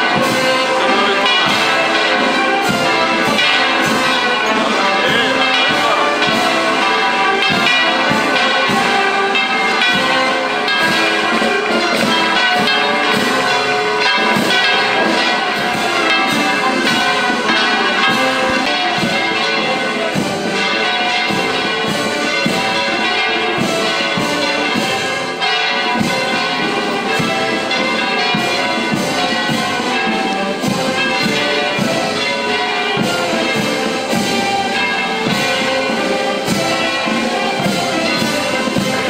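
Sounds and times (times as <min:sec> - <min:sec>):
brass band music: 0:00.0 - 0:39.0
church bells pealing: 0:00.0 - 0:39.0.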